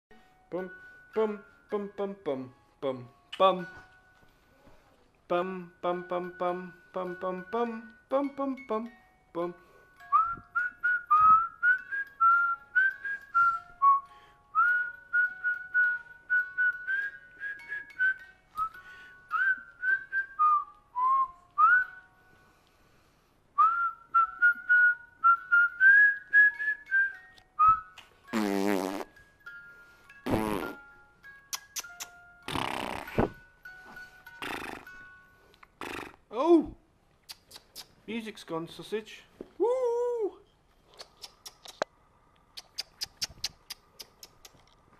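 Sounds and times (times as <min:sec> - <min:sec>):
person whistling a tune: 0:10.0 - 0:22.1, 0:23.6 - 0:29.0, 0:39.6 - 0:40.4.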